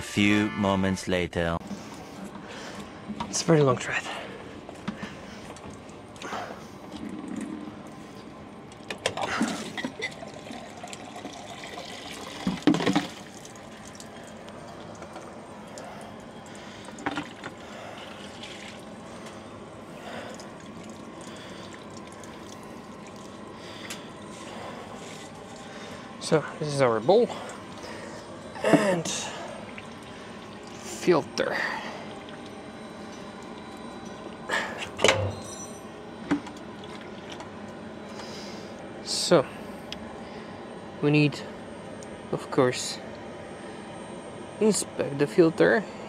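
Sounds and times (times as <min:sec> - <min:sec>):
fuel dripping into bucket: 0:08.7 - 0:19.4, 0:20.0 - 0:26.0, 0:27.2 - 0:28.2, 0:29.1 - 0:35.2, 0:36.2 - 0:37.8.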